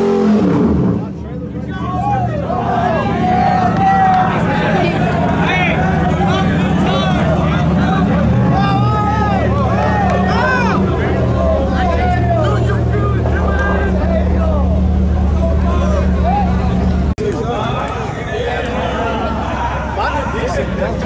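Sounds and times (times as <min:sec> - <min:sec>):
crowd shouting and chatter: 0:00.0 - 0:21.0
truck engine revving: 0:00.0 - 0:21.0.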